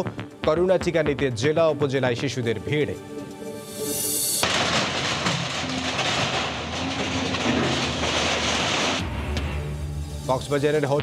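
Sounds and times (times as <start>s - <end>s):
crunching clattering debris: 4.4s - 9.1s.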